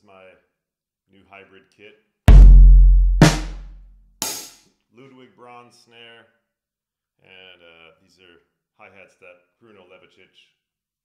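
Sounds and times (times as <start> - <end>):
deep electronic drum boom: 2.3 - 3.8
sharp drum hits: 2.3 - 4.5.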